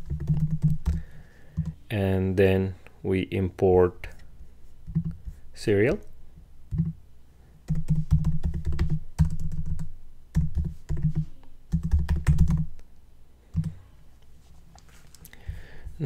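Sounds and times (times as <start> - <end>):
typing on computer keyboard: 0.0 - 1.0, 7.7 - 12.7.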